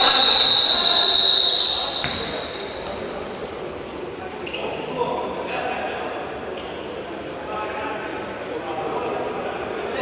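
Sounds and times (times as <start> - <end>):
indistinct voices: 0.0 - 3.3
background hubbub: 0.0 - 10.0.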